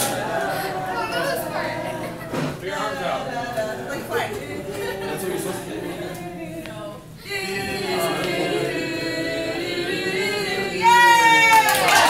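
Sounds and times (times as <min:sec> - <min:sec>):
voices singing unaccompanied: 0:00.0 - 0:12.0.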